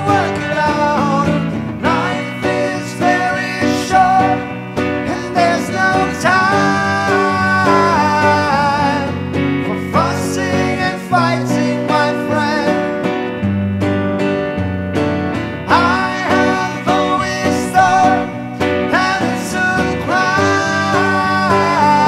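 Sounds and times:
man singing into a microphone: 0.0 - 13.1, 15.6 - 22.0
acoustic guitar: 0.0 - 22.0
electric guitar: 0.0 - 22.0.

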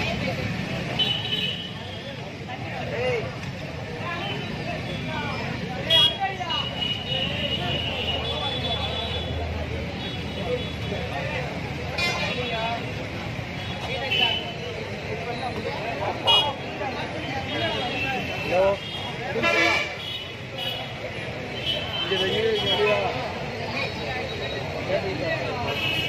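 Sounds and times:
crowd voices talking and calling: 0.0 - 26.0.

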